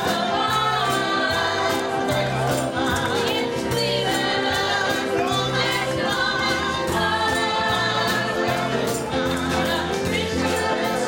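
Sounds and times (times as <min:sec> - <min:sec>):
backing singers: 0:00.0 - 0:11.0
band accompaniment: 0:00.0 - 0:11.0
percussion beat: 0:00.0 - 0:11.0.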